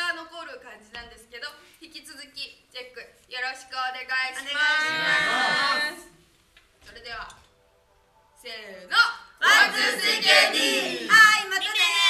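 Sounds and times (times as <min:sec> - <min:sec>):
group shouting in unison: 0:09.4 - 0:11.2.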